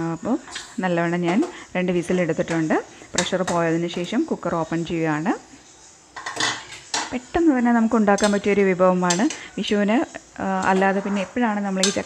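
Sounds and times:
woman talking: 0.0 - 5.4, 7.2 - 12.0.

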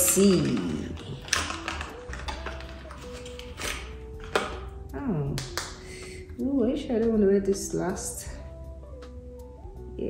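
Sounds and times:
soft background music: 0.0 - 10.0
small box being opened: 0.9 - 4.7.

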